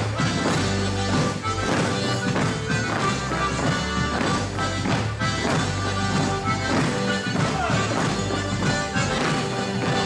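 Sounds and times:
folk dance band playing: 0:00.0 - 0:10.0.

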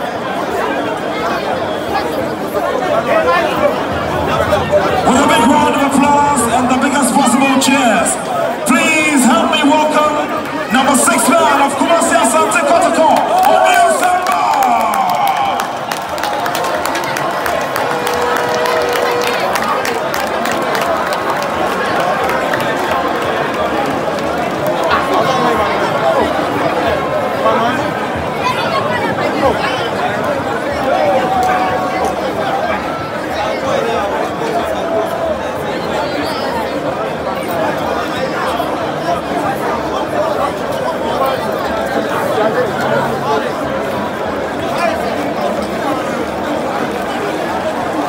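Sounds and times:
crowd cheering and talking: 0:00.0 - 0:48.0
people clapping: 0:09.7 - 0:26.3.

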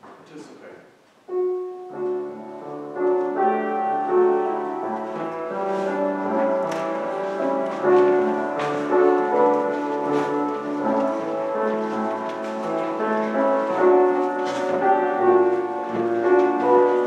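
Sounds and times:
keyboard playing hymn-like melody: 0:01.2 - 0:17.0.

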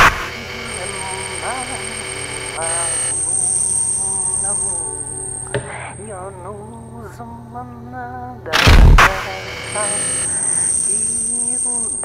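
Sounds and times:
electronic drones: 0:00.0 - 0:12.0
high thin steady whine: 0:00.0 - 0:12.0.

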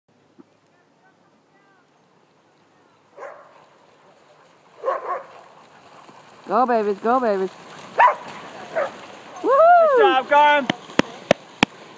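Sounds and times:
dogs barking: 0:03.1 - 0:03.8, 0:04.4 - 0:06.3, 0:07.7 - 0:09.0.

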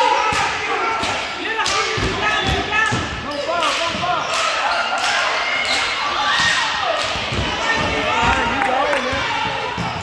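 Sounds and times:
overlapping voices: 0:06.8 - 0:09.8.

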